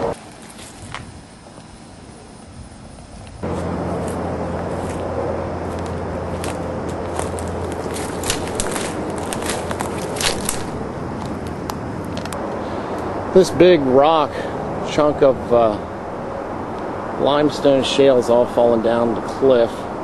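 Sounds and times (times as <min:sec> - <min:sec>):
footsteps through underbrush: 0:00.2 - 0:01.6, 0:03.4 - 0:12.2
low hum: 0:01.8 - 0:20.0
leaves and twigs crackling: 0:03.4 - 0:13.1.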